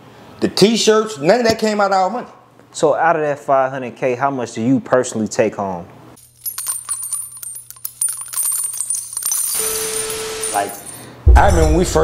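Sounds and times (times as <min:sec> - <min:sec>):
clicking and jingling: 0:06.2 - 0:11.2.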